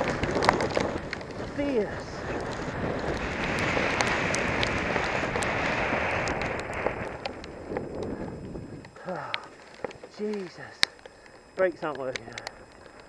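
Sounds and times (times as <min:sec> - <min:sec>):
wind buffeting microphone: 0:00.0 - 0:13.0
sharp clicks: 0:06.1 - 0:13.0.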